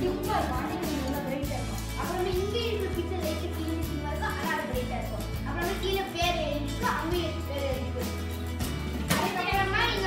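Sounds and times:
child's voice: 0:00.0 - 0:08.3, 0:09.1 - 0:10.0
background music with bass line: 0:00.0 - 0:10.0.

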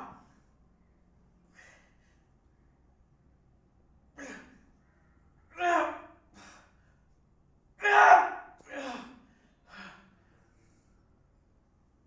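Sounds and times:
man breathing with effort: 0:00.2 - 0:02.9, 0:06.2 - 0:07.2, 0:08.6 - 0:11.3.

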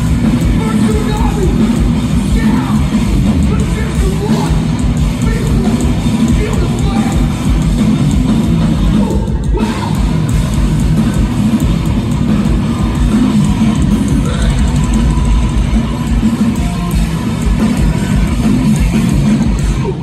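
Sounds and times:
distorted electric guitars: 0:00.0 - 0:20.0
pounding drums: 0:00.0 - 0:20.0.

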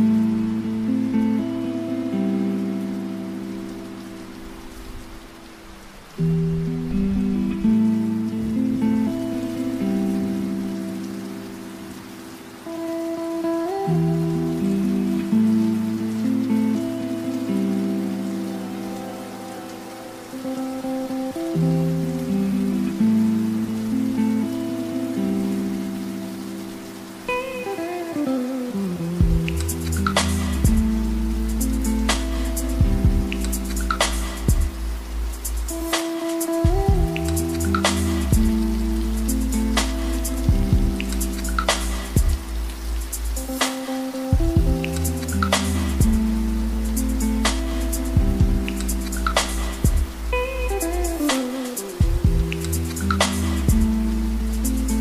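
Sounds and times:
slow sustained music chords: 0:00.0 - 0:55.0.

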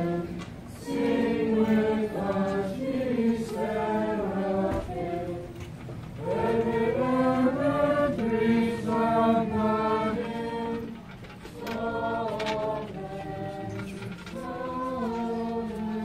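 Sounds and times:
group singing a hymn: 0:00.0 - 0:16.0.

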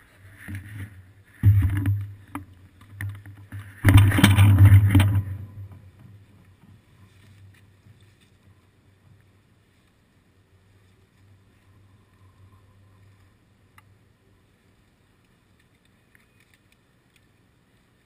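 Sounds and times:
bicycle rumble and rattle: 0:00.0 - 0:14.0
low steady hum: 0:00.0 - 0:18.0.

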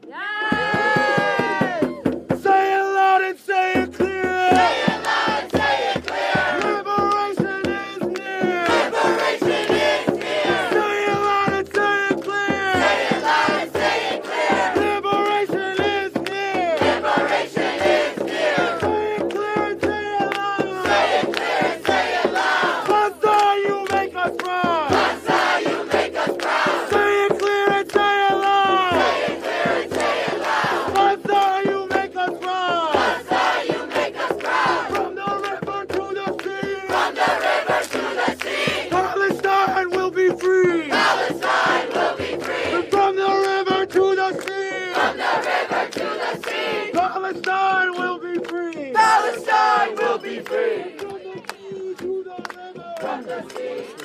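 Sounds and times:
man leading chants on microphone: 0:02.3 - 0:04.9, 0:06.3 - 0:08.8, 0:10.5 - 0:12.9, 0:14.5 - 0:16.9, 0:18.6 - 0:21.0, 0:22.8 - 0:25.0, 0:26.8 - 0:29.2, 0:30.9 - 0:33.0, 0:34.9 - 0:37.0, 0:38.9 - 0:40.9, 0:42.7 - 0:45.0, 0:46.9 - 0:49.2, 0:51.0 - 0:53.2
crowd chanting slogans: 0:04.2 - 0:54.0.

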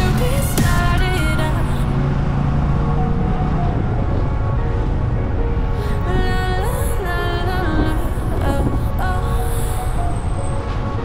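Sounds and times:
quiet background music: 0:00.0 - 0:11.0
vehicle driving rumble: 0:00.0 - 0:11.0.

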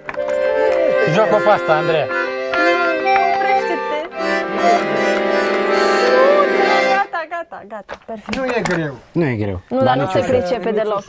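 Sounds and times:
accordion chords: 0:00.0 - 0:07.5.

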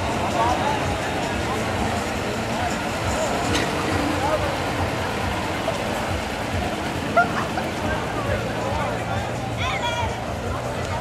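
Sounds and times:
crowd murmur: 0:00.0 - 0:11.0
fire engine diesel engine: 0:00.0 - 0:11.0.

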